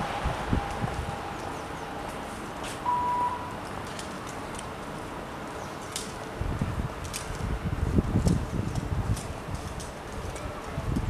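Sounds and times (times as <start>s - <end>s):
wind buffeting on microphone: 0.0s - 2.0s, 6.3s - 11.0s
short high beep: 2.8s - 3.5s.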